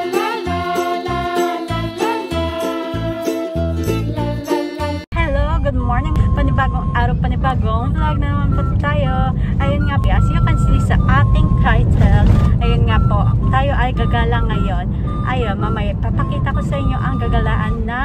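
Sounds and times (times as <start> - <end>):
person talking: 5.1 - 18.0
car cabin road and engine rumble: 6.0 - 18.0.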